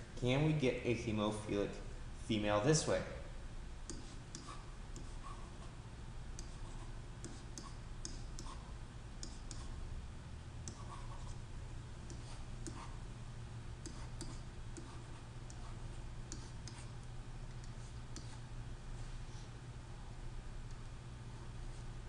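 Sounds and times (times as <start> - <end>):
low electrical hum: 0.0 - 22.0.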